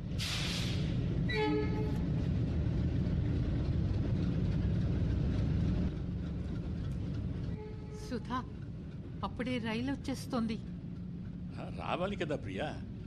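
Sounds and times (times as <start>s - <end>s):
train rumbling: 0.0s - 13.0s
train horn blast: 1.3s - 2.0s, 7.5s - 8.1s.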